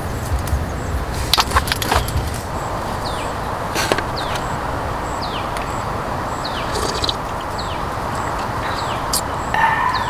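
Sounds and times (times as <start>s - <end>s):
background hiss: 0.0s - 10.0s.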